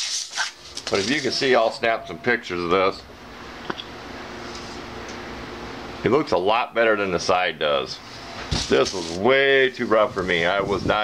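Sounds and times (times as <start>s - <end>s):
fan hum and hiss: 0.0s - 11.0s
faint held tones: 1.2s - 5.2s.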